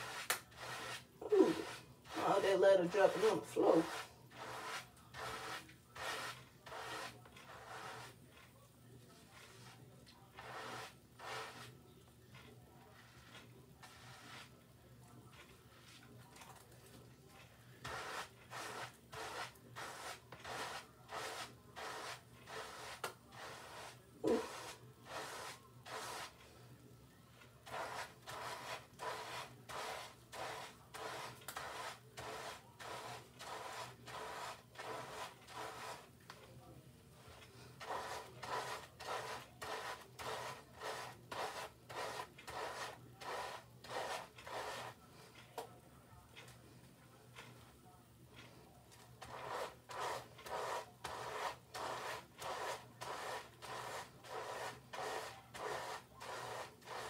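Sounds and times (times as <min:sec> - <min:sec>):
brush stroking through wet hair: 0:00.0 - 0:11.7, 0:12.4 - 0:14.6, 0:15.3 - 0:26.4, 0:27.6 - 0:36.1, 0:37.3 - 0:45.0, 0:49.2 - 0:57.0.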